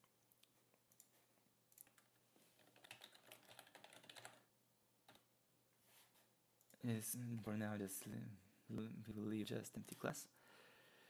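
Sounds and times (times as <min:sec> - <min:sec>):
faint computer keyboard typing: 0:00.8 - 0:05.3.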